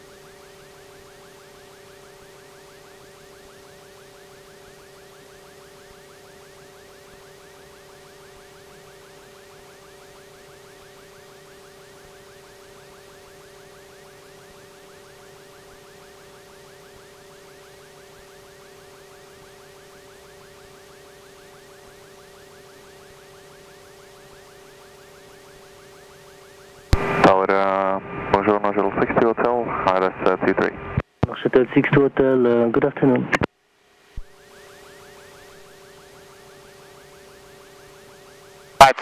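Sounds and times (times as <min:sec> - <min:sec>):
air traffic control radio call: 0:27.0 - 0:33.5, 0:38.8 - 0:39.0.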